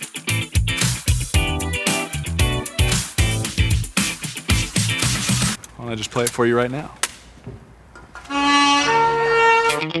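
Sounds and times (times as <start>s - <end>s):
saxophone playing held notes: 8.3s - 10.0s.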